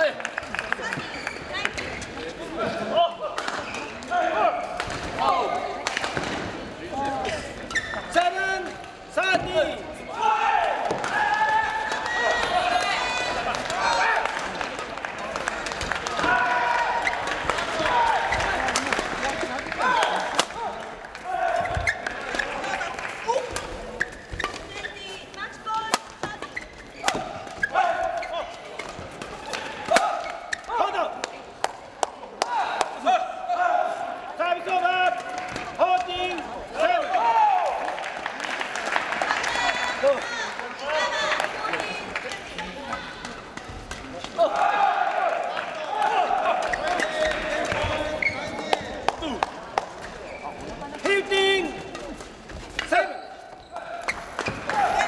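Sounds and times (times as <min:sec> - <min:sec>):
shoes squeaking on court: 0:00.9 - 0:02.2, 0:07.2 - 0:08.2, 0:21.6 - 0:23.0, 0:23.6 - 0:29.4, 0:46.6 - 0:48.9, 0:50.0 - 0:51.0, 0:52.0 - 0:55.0.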